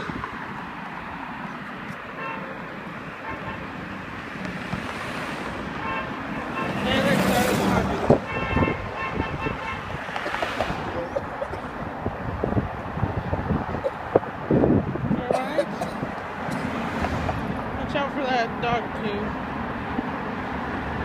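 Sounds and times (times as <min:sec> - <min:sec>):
road traffic passing: 0:00.0 - 0:21.0.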